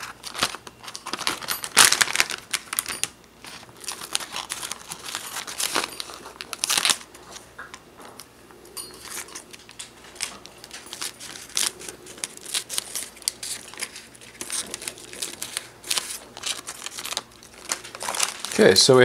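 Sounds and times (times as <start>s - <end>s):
foil crinkling: 0.0s - 7.5s, 9.0s - 19.0s.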